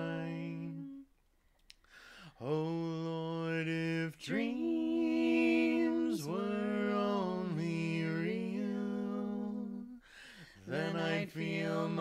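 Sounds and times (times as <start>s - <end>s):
two voices singing in harmony: 0.0s - 1.2s, 2.4s - 12.0s.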